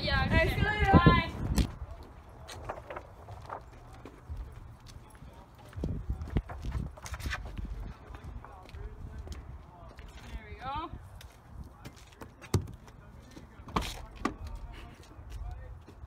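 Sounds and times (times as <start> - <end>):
wind on microphone: 0.0 - 2.0, 5.7 - 9.6
footsteps on pavement: 0.6 - 16.0.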